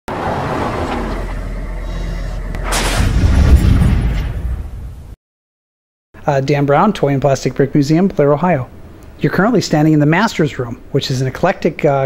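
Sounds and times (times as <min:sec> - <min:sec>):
rumbling noise bed: 0:00.1 - 0:05.2
whoosh: 0:00.1 - 0:05.2
deep boom: 0:01.1 - 0:05.2.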